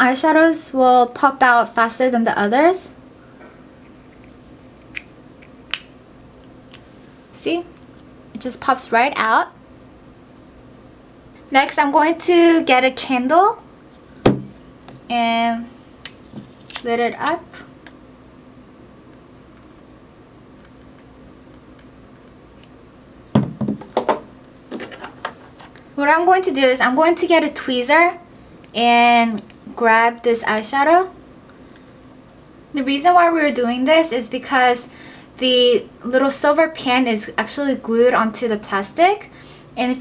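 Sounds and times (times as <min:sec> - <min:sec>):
faint room hum: 0:00.0 - 0:40.0.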